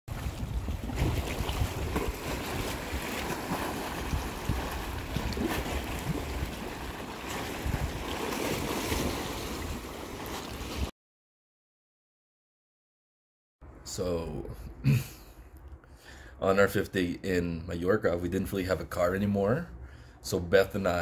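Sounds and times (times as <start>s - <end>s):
wind rumbling on microphone: 0.1s - 10.0s
waves lapping against rocks: 0.1s - 10.9s.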